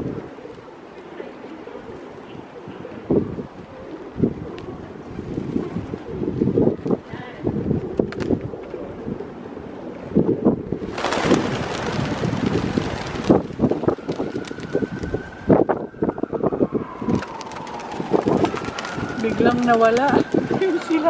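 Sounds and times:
wind on microphone: 0:00.0 - 0:00.7, 0:01.8 - 0:21.0
pigeon wings flapping: 0:08.0 - 0:08.4, 0:10.8 - 0:15.2, 0:17.1 - 0:21.0
faint falling siren-like tone: 0:13.6 - 0:21.0.

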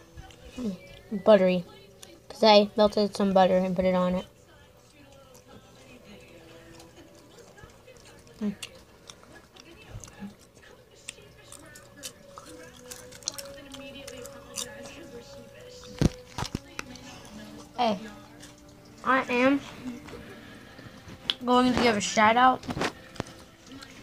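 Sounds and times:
popcorn being chewed: 0:00.0 - 0:24.0.

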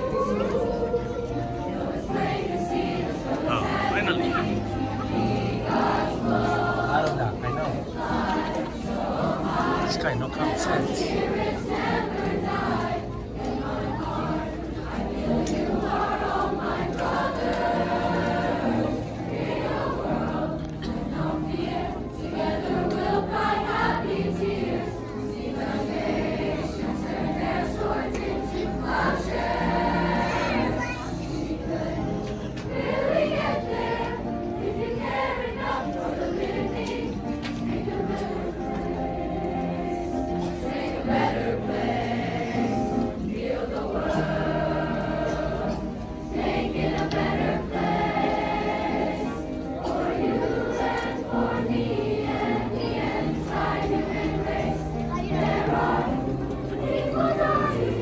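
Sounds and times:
youth choir singing: 0:00.0 - 0:58.0.

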